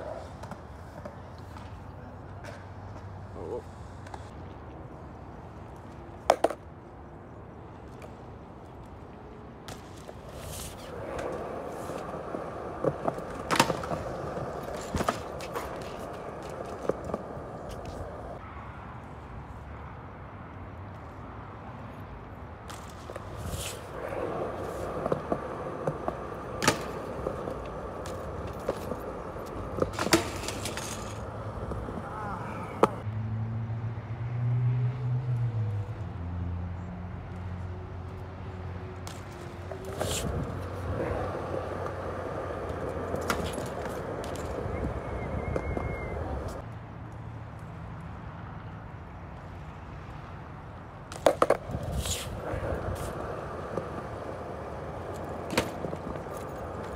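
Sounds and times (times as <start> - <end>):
skateboard wheels rolling on concrete: 0.0 - 33.1, 34.3 - 56.9
skateboard clacking on ground: 6.2 - 6.7, 9.7 - 18.4, 22.7 - 33.0, 39.1 - 46.7, 51.1 - 56.9.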